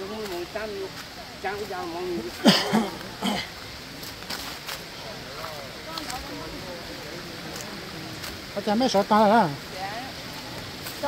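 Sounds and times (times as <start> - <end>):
shallow stream rushing: 0.0 - 11.0.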